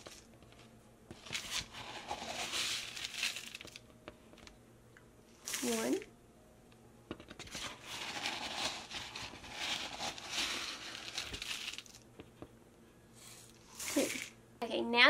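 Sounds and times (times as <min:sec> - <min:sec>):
oats rustling in a cup: 0:00.0 - 0:03.8, 0:05.4 - 0:05.9, 0:07.4 - 0:12.1, 0:13.3 - 0:14.4.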